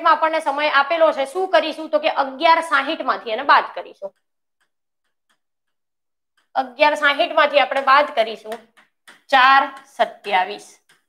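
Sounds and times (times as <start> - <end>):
woman's voice: 0.0 - 4.1, 6.6 - 8.6, 9.3 - 10.8
chalk tapping on blackboard: 4.0 - 11.0.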